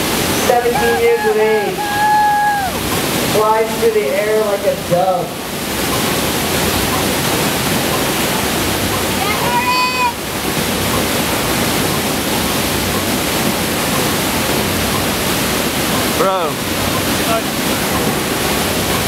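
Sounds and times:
water rushing on wave machine: 0:00.0 - 0:19.0.

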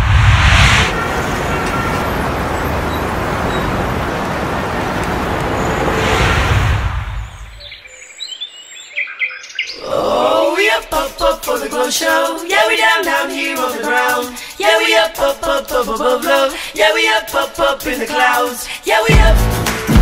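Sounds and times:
road traffic noise: 0:00.0 - 0:07.6
short bird chirps: 0:07.1 - 0:09.6
voices singing: 0:09.7 - 0:19.9.

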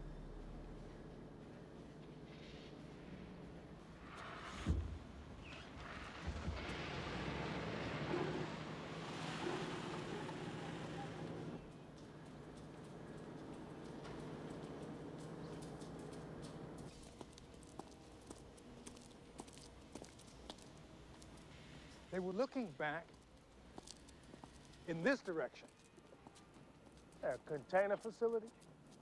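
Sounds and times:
low steady hum: 0:00.0 - 0:04.0
footsteps on concrete: 0:11.9 - 0:21.5, 0:23.1 - 0:29.0.

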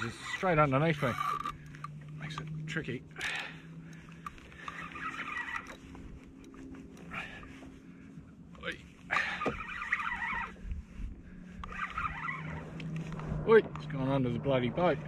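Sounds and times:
fishing reel whirring: 0:00.0 - 0:07.2, 0:08.6 - 0:13.4
low steady hum: 0:00.0 - 0:15.0.

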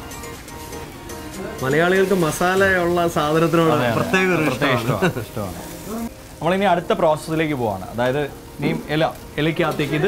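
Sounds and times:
meat frying on a griddle: 0:00.0 - 0:10.0
man talking: 0:01.4 - 0:10.0.

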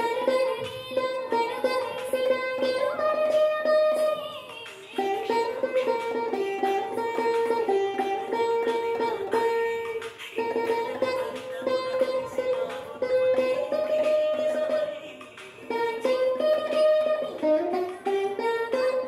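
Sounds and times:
plucked string melody: 0:00.0 - 0:19.0.

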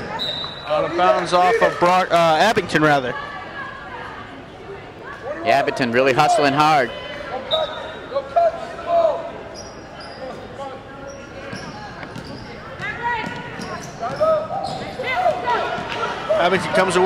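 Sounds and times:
shouts and voices: 0:00.1 - 0:09.5, 0:12.8 - 0:17.0
basketball bouncing on gym floor: 0:11.5 - 0:15.0.

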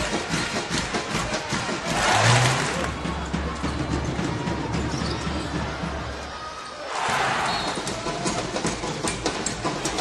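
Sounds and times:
arena crowd hum: 0:00.0 - 0:10.0.

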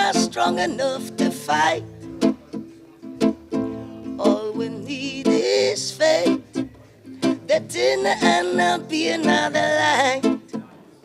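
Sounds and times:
man singing: 0:00.0 - 0:01.9, 0:04.2 - 0:10.5
acoustic guitar strummed chords: 0:00.0 - 0:10.9.

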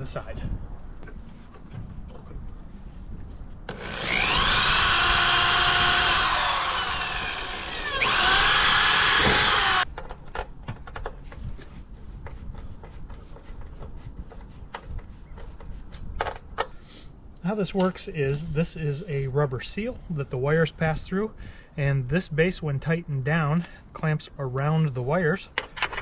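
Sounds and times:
cordless drill drilling into metal: 0:03.7 - 0:09.8.

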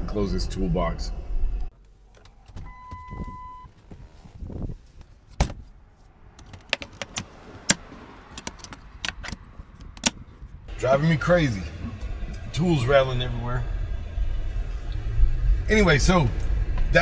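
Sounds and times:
low vehicle rumble: 0:00.0 - 0:17.0.

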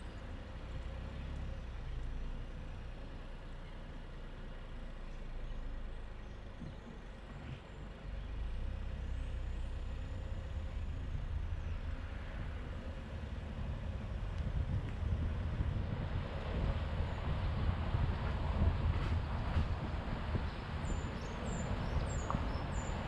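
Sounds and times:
car engine and tyre rumble: 0:00.0 - 0:23.0.

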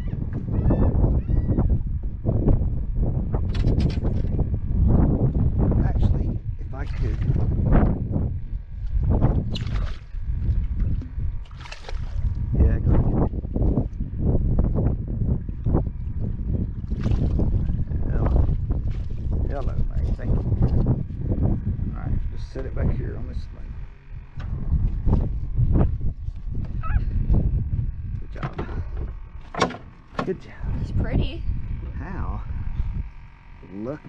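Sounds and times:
wind buffeting microphone: 0:00.0 - 0:34.0
water splashing: 0:09.5 - 0:12.4, 0:16.8 - 0:17.8.

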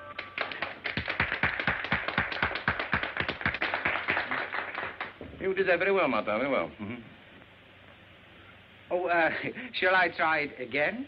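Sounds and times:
people clapping: 0:00.0 - 0:05.2.

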